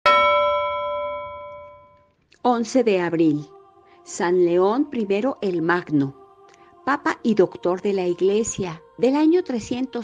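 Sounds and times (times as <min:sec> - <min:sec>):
bell-like chime ringing: 0:00.0 - 0:02.2.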